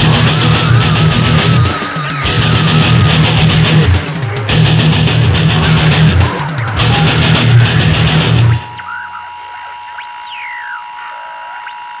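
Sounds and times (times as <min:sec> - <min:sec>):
high squealing pitch swoops: 0:00.0 - 0:04.5
distorted electric guitar ringing: 0:00.0 - 0:10.9.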